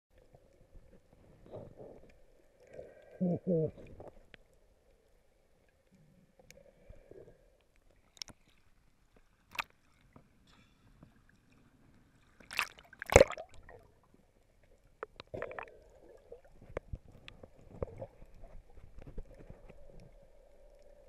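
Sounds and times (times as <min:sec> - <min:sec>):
muffled underwater sloshing: 0:00.1 - 0:21.0.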